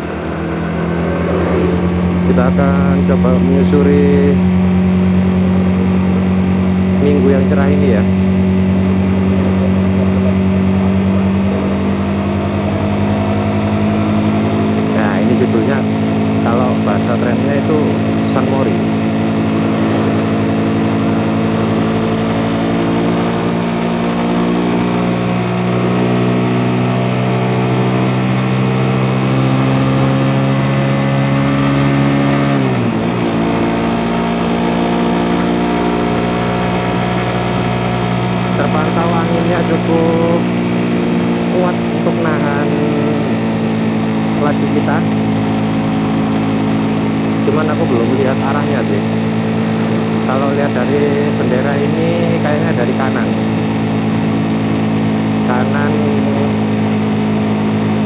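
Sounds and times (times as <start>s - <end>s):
motorcycle engine cruising: 0.0s - 58.0s.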